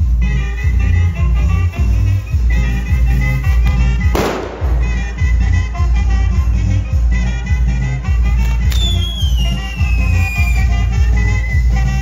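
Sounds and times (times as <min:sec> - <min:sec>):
firework pop and falling whistle: 0:08.5 - 0:10.7.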